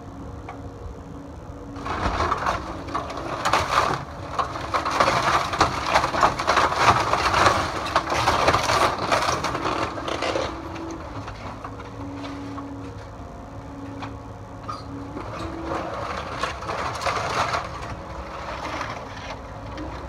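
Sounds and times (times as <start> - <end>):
excavator engine humming: 0.0 - 20.0
wooden timbers cracking and splintering: 0.0 - 20.0.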